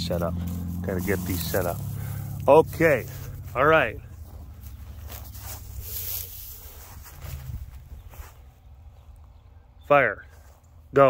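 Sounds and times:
rustling in dry grass: 0:00.0 - 0:09.4
low steady rumble: 0:00.0 - 0:09.8.

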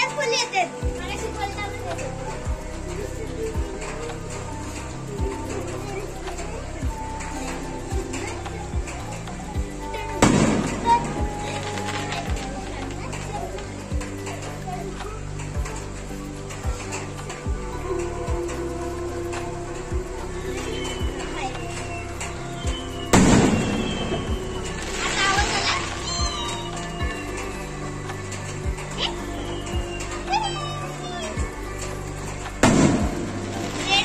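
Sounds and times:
background music: 0:00.0 - 0:34.0
voices: 0:00.0 - 0:34.0
firework bang and crackle: 0:32.6 - 0:33.8.

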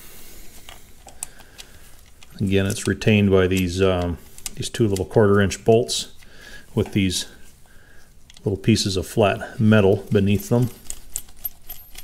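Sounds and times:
small metal parts clicking: 0:00.6 - 0:05.1, 0:10.1 - 0:12.0.

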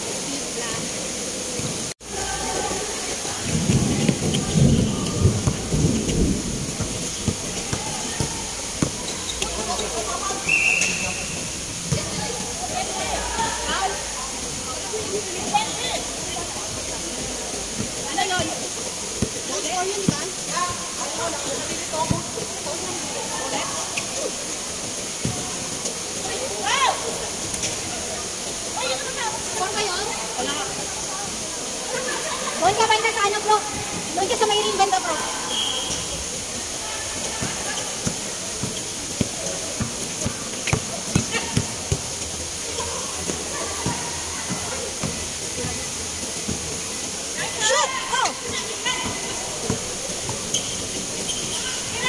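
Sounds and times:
steady hiss: 0:00.0 - 0:52.0
basketball bouncing on court: 0:03.8 - 0:05.8, 0:06.7 - 0:09.9, 0:37.4 - 0:42.1
short high whistle tone: 0:10.4 - 0:11.6, 0:35.4 - 0:36.2.

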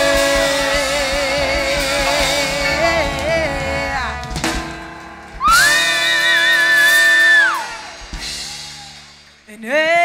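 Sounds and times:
band chord: 0:00.0 - 0:06.0.

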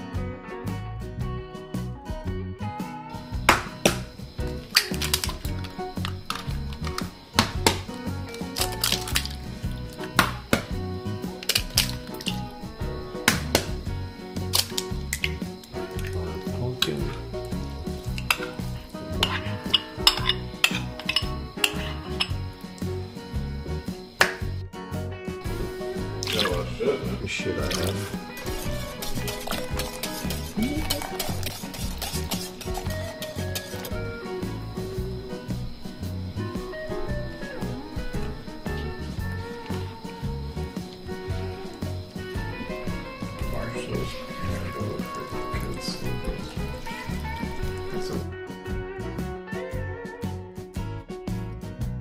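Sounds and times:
background music: 0:00.0 - 0:52.0
eggs cracking: 0:03.5 - 0:22.9, 0:25.5 - 0:34.0, 0:40.5 - 0:48.2
spoon clinking bowls: 0:18.0 - 0:22.5, 0:26.2 - 0:26.6, 0:27.6 - 0:34.0.

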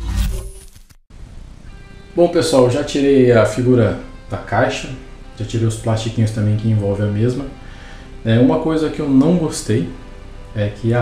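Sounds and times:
quiet background music: 0:01.2 - 0:11.0.

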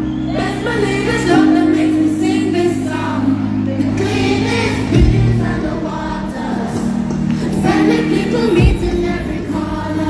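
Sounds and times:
choir singing: 0:00.1 - 0:10.0.

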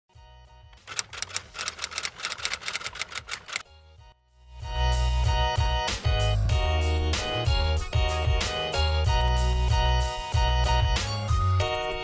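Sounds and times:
rapid typing clicks: 0:00.8 - 0:03.6.

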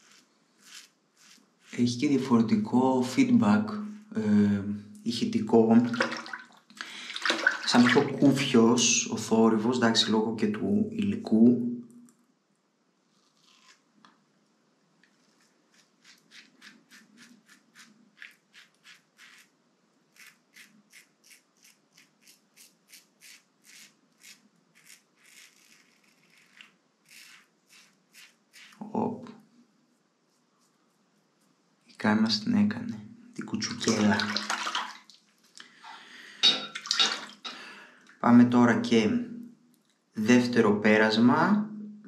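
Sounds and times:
razor scraping stubble: 0:00.0 - 0:02.3, 0:13.1 - 0:13.9, 0:15.1 - 0:19.5, 0:20.1 - 0:28.9.

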